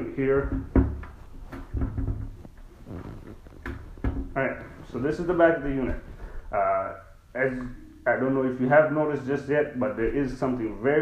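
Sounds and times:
low rubbing rumble: 0.0 - 7.2.

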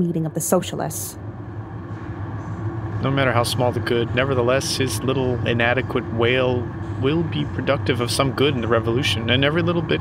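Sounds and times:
machinery rumbling and humming: 0.0 - 10.0.

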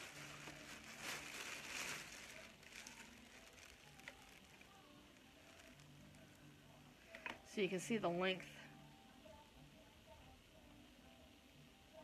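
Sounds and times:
bag rustling: 0.0 - 4.8.

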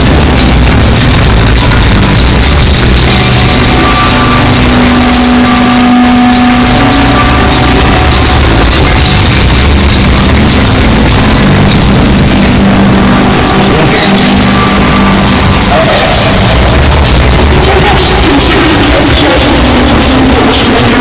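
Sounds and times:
distorted electronic noise and drone: 0.0 - 21.0.

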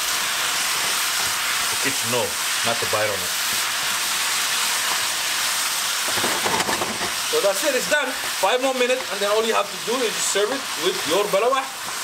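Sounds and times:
food sizzling in a pan: 0.0 - 12.0.

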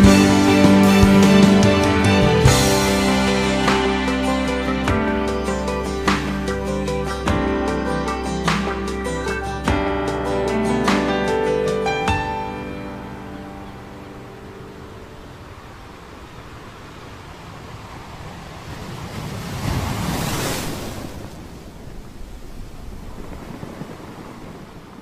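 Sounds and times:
ocean waves breaking on beach: 0.0 - 25.0.

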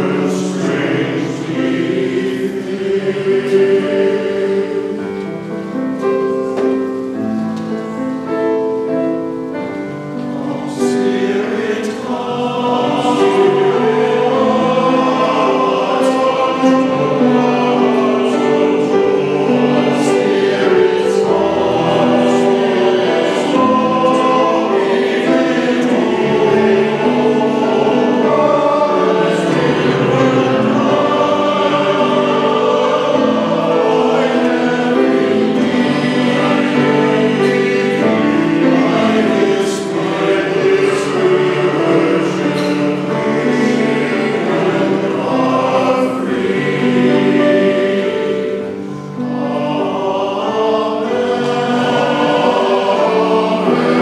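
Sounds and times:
men's chorus singing: 0.0 - 7.2, 10.2 - 54.0.

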